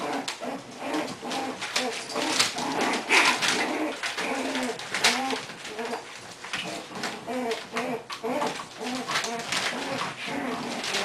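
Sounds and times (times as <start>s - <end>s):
claws clicking on tile floor: 0.0s - 11.0s
puppies whining and grunting: 0.0s - 11.0s.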